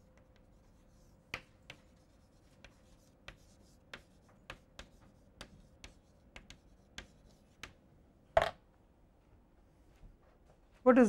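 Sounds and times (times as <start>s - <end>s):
chalk scratching: 0.0s - 7.8s
chalk tapping on chalkboard: 0.0s - 7.8s.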